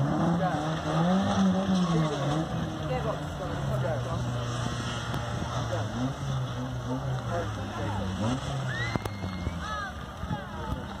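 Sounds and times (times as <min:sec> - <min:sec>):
distant car engine hum: 0:00.0 - 0:11.0.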